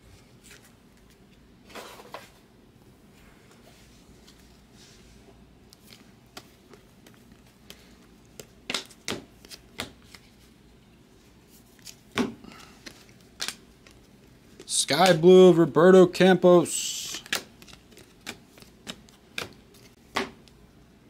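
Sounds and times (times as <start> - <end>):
trading cards flicking: 17.0 - 20.3.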